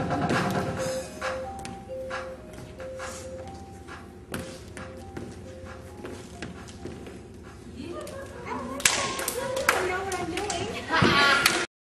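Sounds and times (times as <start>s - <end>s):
hand claps: 8.8s - 10.7s.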